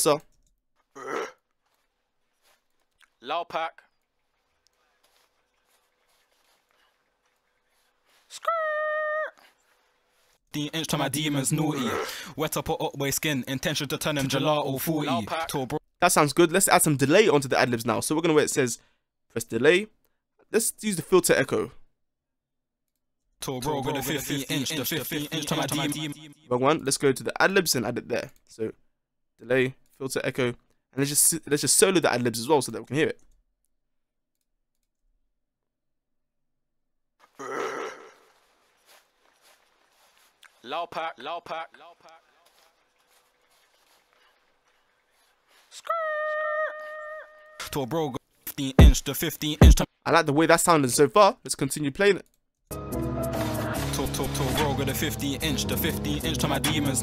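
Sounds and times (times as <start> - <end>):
man speaking: 0.0 - 0.3, 10.5 - 18.8, 23.4 - 28.8, 40.5 - 42.6.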